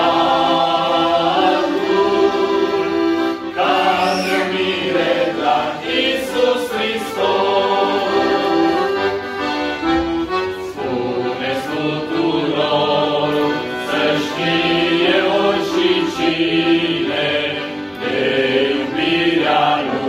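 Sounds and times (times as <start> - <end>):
male vocal group singing: 0.0 - 9.2, 10.8 - 20.0
accordion: 0.0 - 20.0.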